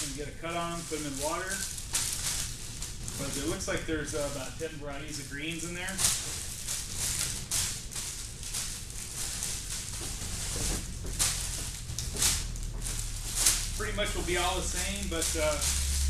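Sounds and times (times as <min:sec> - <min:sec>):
low steady hum: 0:00.0 - 0:16.0
plastic wrapping crinkling: 0:00.0 - 0:16.0.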